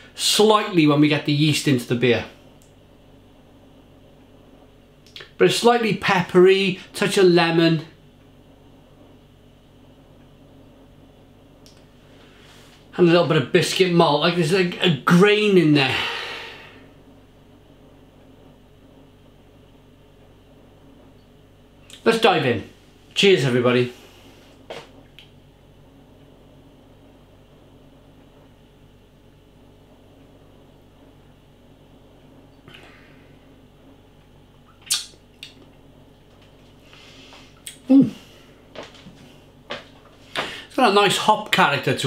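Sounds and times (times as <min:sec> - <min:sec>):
faint low hum: 0:00.0 - 0:42.0
small mouth click: 0:05.0 - 0:05.3, 0:34.7 - 0:35.7, 0:37.6 - 0:37.9
man exhaling breathily: 0:15.9 - 0:16.9
lip smack: 0:34.7 - 0:35.7
soft breath: 0:36.8 - 0:39.4, 0:40.2 - 0:40.7.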